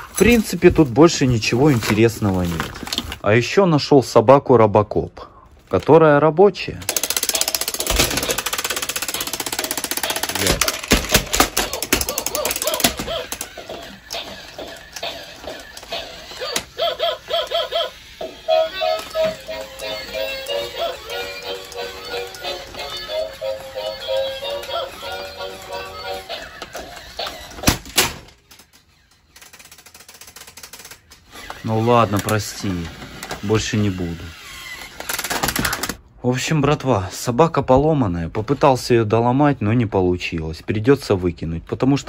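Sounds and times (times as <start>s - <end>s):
toy motor clatter: 6.8s - 36.0s.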